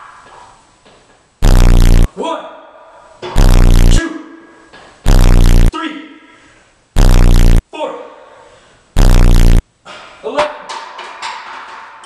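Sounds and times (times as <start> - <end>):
loud low buzzing: 1.4 - 2.1, 3.4 - 4.0, 5.1 - 5.7, 7.0 - 7.6, 9.0 - 9.6.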